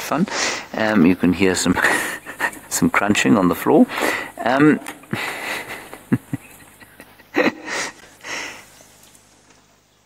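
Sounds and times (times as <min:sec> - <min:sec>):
man breathing and sniffing: 0:00.3 - 0:00.8, 0:01.8 - 0:02.7, 0:03.9 - 0:04.4, 0:05.0 - 0:06.9, 0:07.5 - 0:08.9.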